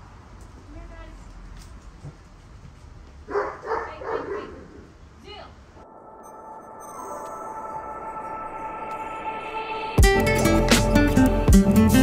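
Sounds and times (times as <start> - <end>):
dog barking: 3.3 - 4.8.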